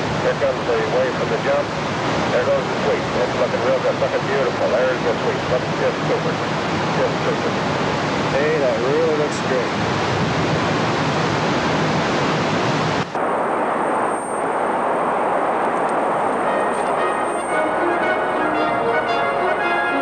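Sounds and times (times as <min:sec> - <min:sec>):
rushing water: 0:00.0 - 0:13.2.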